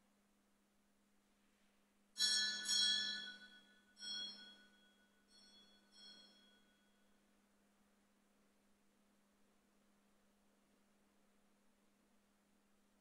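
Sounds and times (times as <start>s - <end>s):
small bell ringing: 2.2s - 7.2s.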